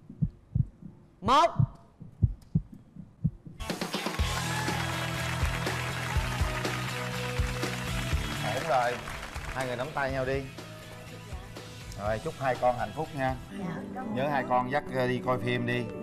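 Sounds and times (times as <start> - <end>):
heartbeat thumps: 0.0 - 3.7
celebratory music with steady beat: 3.5 - 14.5.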